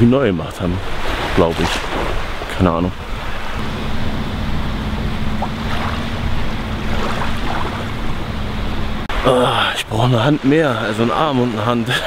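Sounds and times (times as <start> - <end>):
wind rumbling on microphone: 0.0 - 9.2
small waves washing onto sand: 0.3 - 4.1, 6.8 - 8.2
faint low hum: 2.8 - 9.1.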